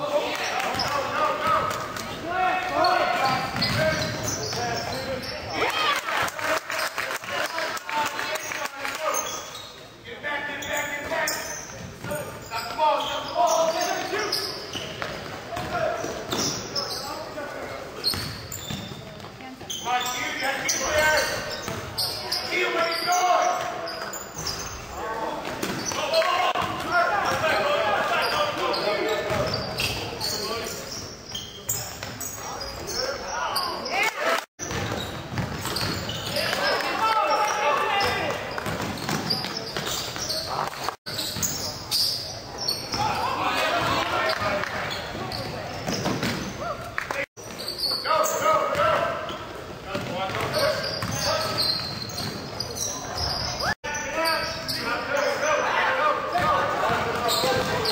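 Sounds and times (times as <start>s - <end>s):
crowd voices and cheering: 0.0s - 9.7s, 35.8s - 41.8s, 42.4s - 49.3s.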